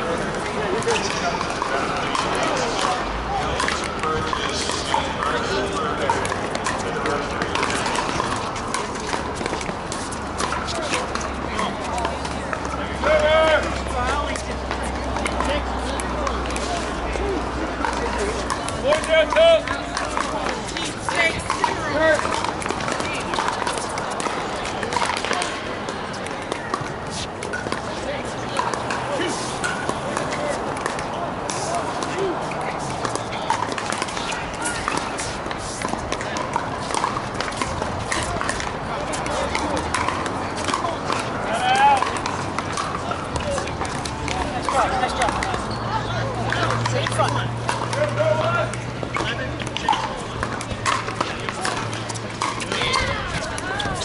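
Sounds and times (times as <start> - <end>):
chatter of players: 0.0 - 54.0
paddles hitting plastic ball: 0.3 - 32.3, 32.9 - 45.7, 46.3 - 54.0.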